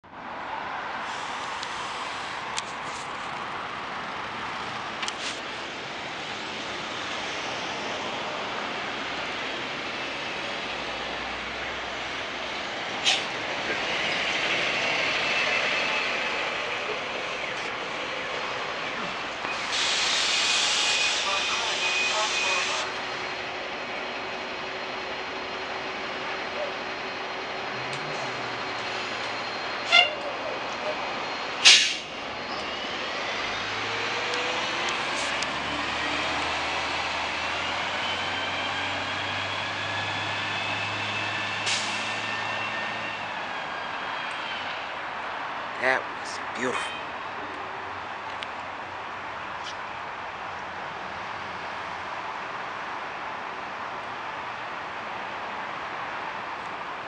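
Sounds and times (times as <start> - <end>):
bus drivetrain whine: 0.0 - 57.0
bus air brake hiss: 1.0 - 2.4, 13.0 - 13.3, 19.5 - 22.9, 31.6 - 32.1, 41.6 - 42.2.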